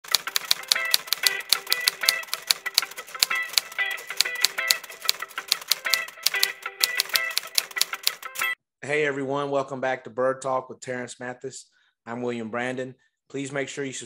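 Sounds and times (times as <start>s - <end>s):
typewriter key clicks: 0.0s - 8.5s
short repeating melody: 0.1s - 8.6s.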